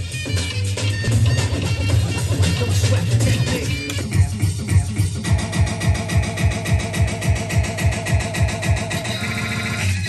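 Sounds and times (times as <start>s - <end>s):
kick-drum beat: 1.0s - 9.1s.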